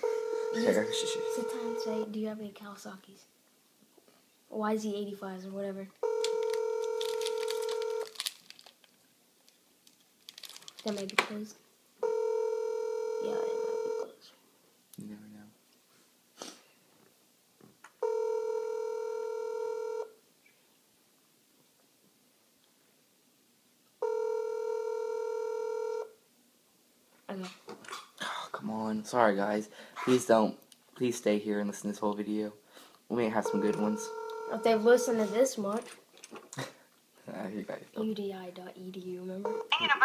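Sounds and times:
telephone ringback tone: 0.0s - 2.1s, 6.0s - 8.1s, 12.0s - 14.1s, 18.0s - 20.1s, 24.0s - 26.1s, 33.4s - 35.4s, 39.5s - 39.8s.

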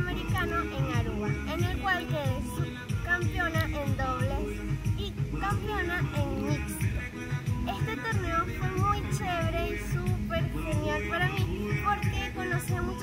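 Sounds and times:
background music with steady beat: 0.0s - 13.0s.

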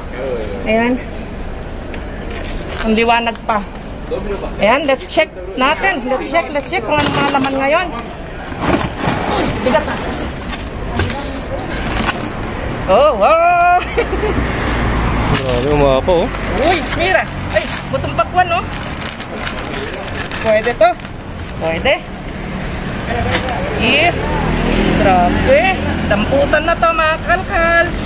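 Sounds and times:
street traffic noise: 0.0s - 28.0s.

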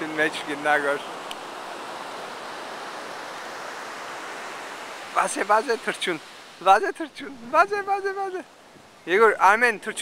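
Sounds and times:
ocean surf rushing: 0.0s - 8.6s.

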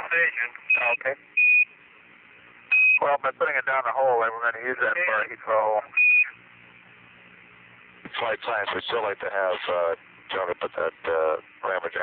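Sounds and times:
faint radio hiss: 0.0s - 12.0s
short high beeps: 2.7s - 3.0s.

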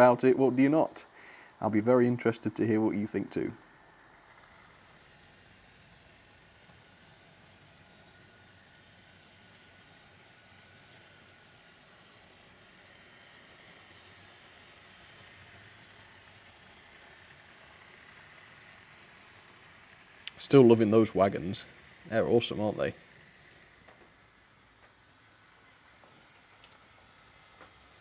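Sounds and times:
model trains running on track: 0.0s - 28.0s.

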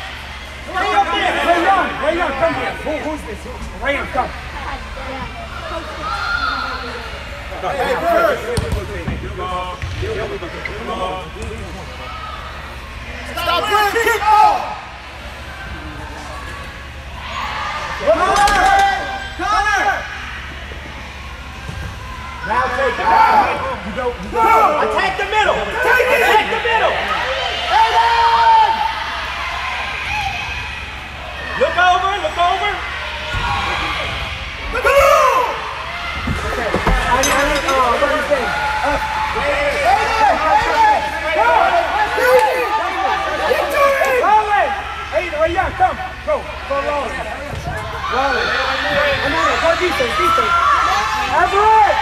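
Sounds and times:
crowd shouting and chattering: 0.0s - 52.0s
hum and murmur of sports hall: 0.0s - 52.0s.

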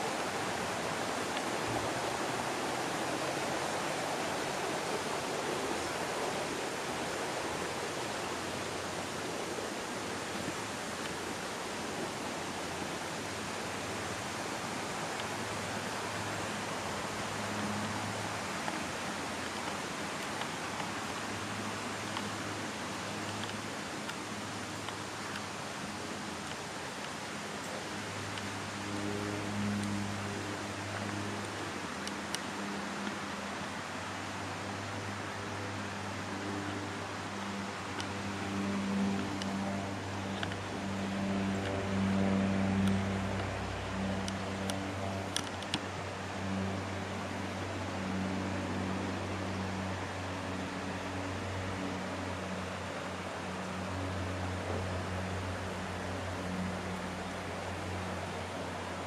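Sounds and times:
stream white water rushing: 0.0s - 59.0s.

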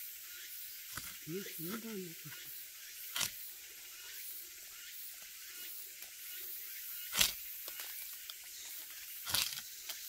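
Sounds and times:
steady high hiss: 0.0s - 10.0s
sickle blade knocking tree trunk: 0.9s - 1.2s, 3.1s - 3.4s, 7.1s - 10.0s.

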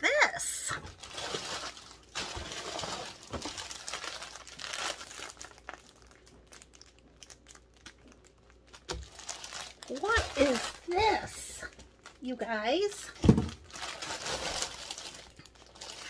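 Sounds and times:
plastic bags crinkling: 0.6s - 16.0s.

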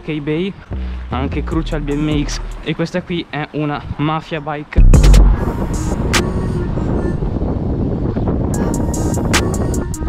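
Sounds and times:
music: 0.1s - 2.7s, 4.8s - 10.0s
wind buffeting microphone: 3.7s - 10.0s.

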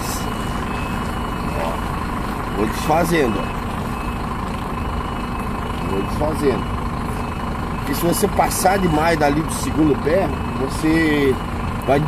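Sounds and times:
truck engine running at low revs: 0.0s - 12.0s.

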